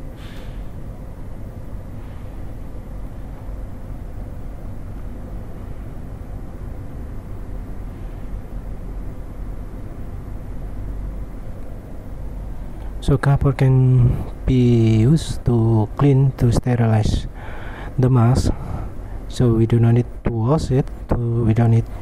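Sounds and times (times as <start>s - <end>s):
faint steady hum: 0.0s - 22.0s
low background rumble: 0.0s - 22.0s.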